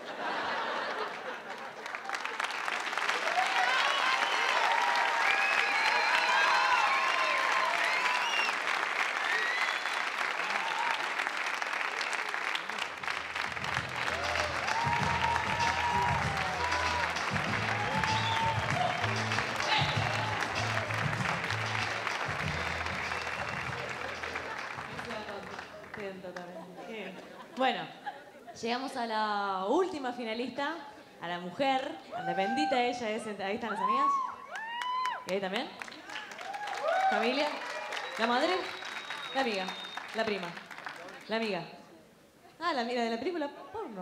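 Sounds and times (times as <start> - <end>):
audience applauding and cheering: 0.6 - 26.1, 33.8 - 41.3
music with pulsing bass: 13.5 - 25.0.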